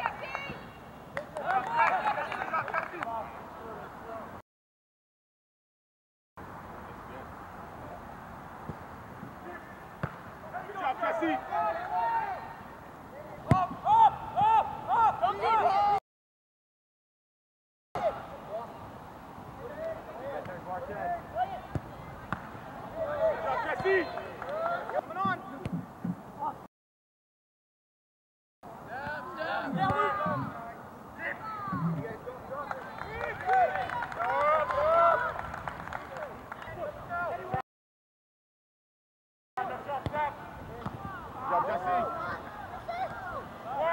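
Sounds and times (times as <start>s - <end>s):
players shouting calls: 9.4s - 16.0s, 19.6s - 25.6s, 28.8s - 35.4s, 39.6s - 43.9s
ball kicked thud: 10.0s - 10.2s.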